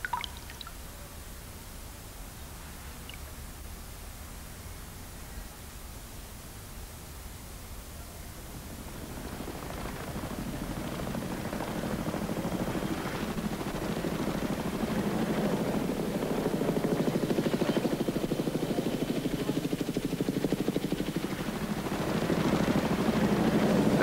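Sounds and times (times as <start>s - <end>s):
helicopter engine noise: 8.6s - 24.0s
helicopter rotor chop: 8.8s - 24.0s.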